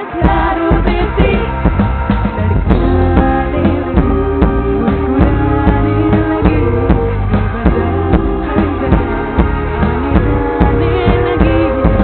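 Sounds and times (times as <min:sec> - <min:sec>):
held instrumental chords: 0:00.0 - 0:12.0
steady drum beat: 0:00.0 - 0:12.0.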